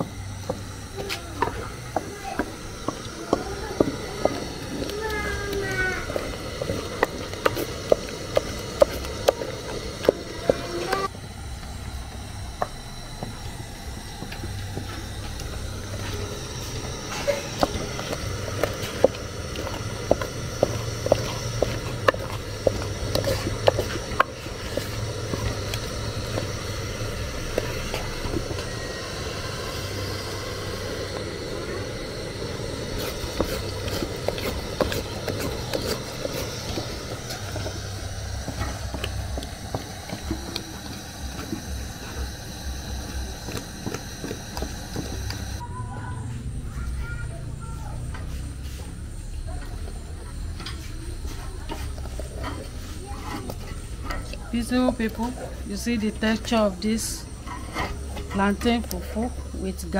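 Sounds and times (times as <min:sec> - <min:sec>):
gas burner rumble and hiss: 0:00.0 - 0:59.9
wooden stick knocking against pot: 0:14.2 - 0:45.6.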